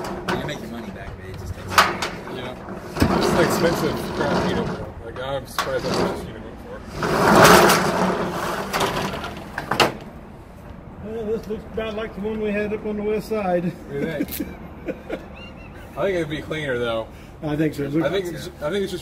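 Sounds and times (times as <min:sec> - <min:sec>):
roll-up door rattling: 0:00.0 - 0:10.1.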